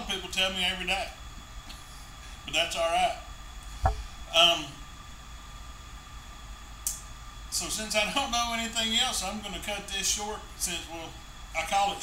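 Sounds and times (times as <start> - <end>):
low hum: 3.6 - 4.5.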